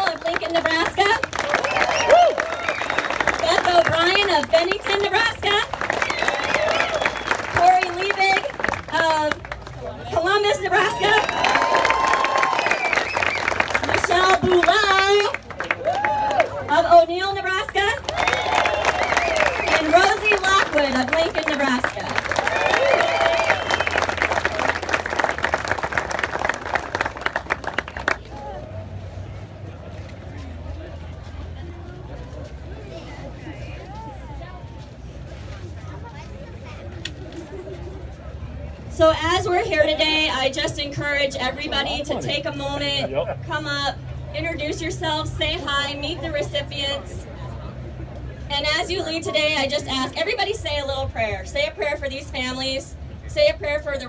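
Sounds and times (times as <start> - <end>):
crowd applauding: 0.0 - 10.0, 10.8 - 16.7, 18.0 - 28.3.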